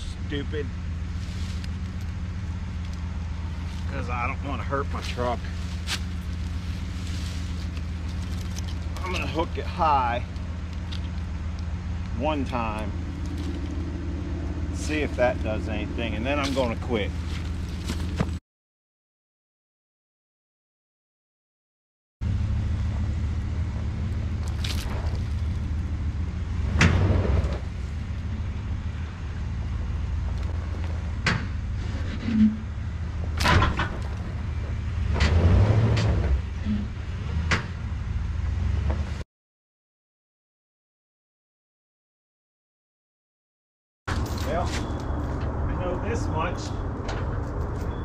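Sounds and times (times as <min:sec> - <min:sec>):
engine idling: 0:00.0 - 0:18.4
tow chain clinking: 0:05.0 - 0:11.7, 0:12.5 - 0:13.9, 0:44.1 - 0:45.4, 0:46.6 - 0:48.0.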